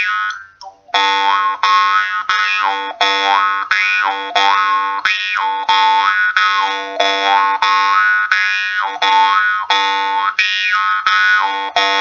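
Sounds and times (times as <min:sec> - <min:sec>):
jaw harp plucking: 0:00.0 - 0:12.0.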